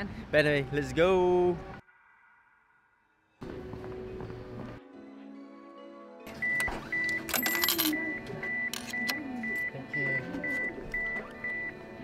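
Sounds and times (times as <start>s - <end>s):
ticket machine beeping: 6.3s - 12.0s
coins and ticket clattering: 7.1s - 9.7s.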